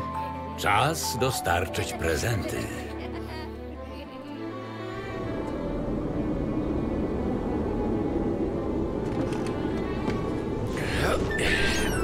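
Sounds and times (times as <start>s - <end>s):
howling snowstorm wind: 4.6s - 12.0s.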